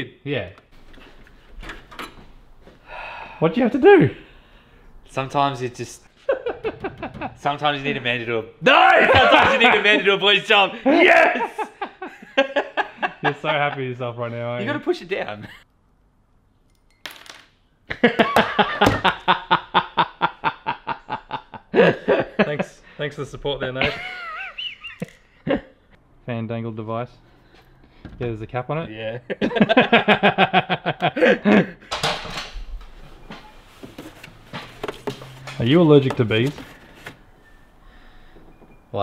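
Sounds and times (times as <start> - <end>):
man laughing hard: 8.8 - 10.1, 10.8 - 13.8, 17.9 - 22.6, 23.8 - 25.7, 29.3 - 31.9.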